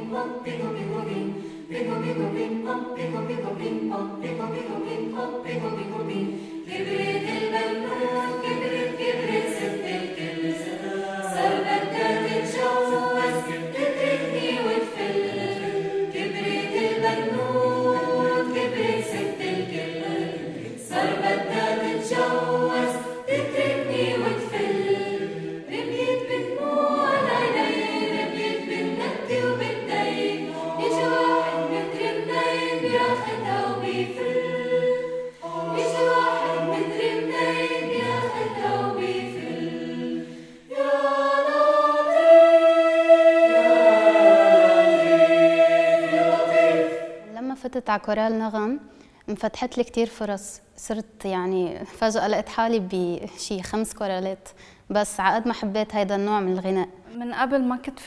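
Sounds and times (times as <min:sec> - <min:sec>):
mixed choir singing a cappella: 0:00.0 - 0:47.4.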